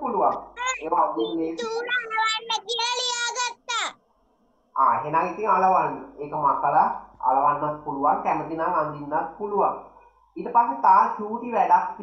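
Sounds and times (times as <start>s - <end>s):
child's sing-song voice: 0.6s - 4.0s.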